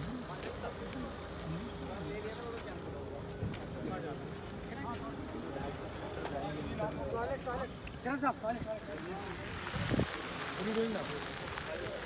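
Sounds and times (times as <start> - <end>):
low engine rumble: 0.0 - 12.0
voices talking indistinctly: 0.0 - 12.0.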